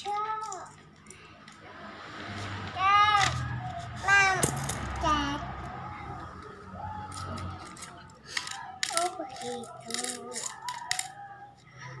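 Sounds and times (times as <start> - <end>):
coins clinking into plastic bank: 7.7 - 11.2.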